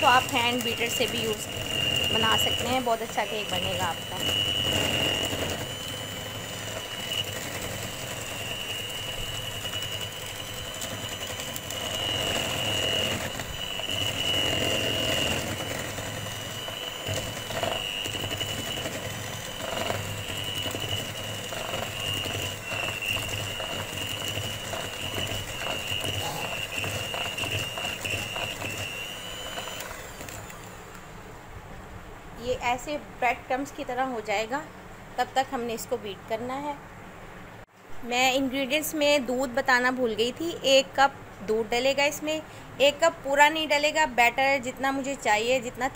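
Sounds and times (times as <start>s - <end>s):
electric hand mixer whining: 0.0s - 31.0s.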